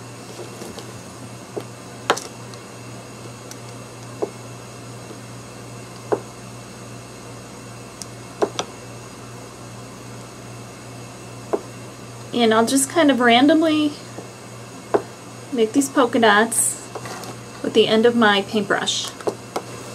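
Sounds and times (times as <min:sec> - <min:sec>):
low steady hum: 0:00.0 - 0:19.9.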